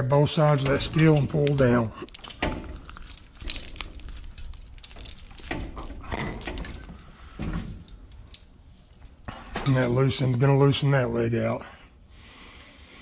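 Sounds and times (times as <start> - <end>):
light metallic clinks: 0.0 - 10.0.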